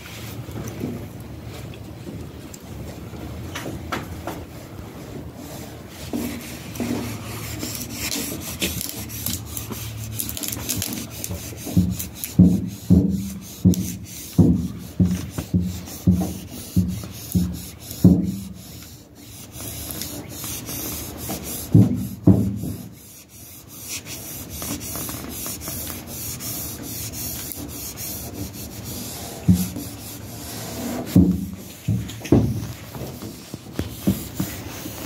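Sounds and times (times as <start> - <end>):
cloth rubbing tape: 6.2 - 35.0.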